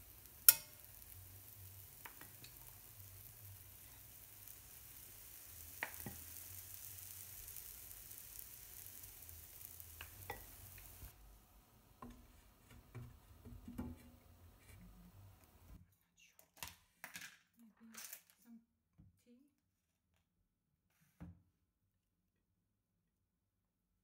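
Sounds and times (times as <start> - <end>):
batter sizzling in a frying pan: 0.0 - 15.8
utensil clicking against pan: 0.4 - 0.8.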